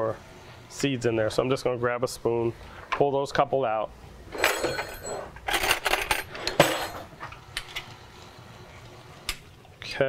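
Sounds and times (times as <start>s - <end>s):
metal cutlery clattering: 4.3s - 7.1s.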